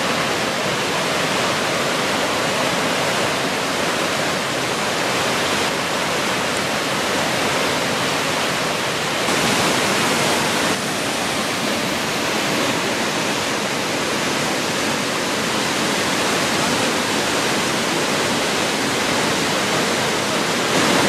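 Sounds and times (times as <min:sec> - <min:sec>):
waterfall roaring over boulders: 0:00.0 - 0:21.0.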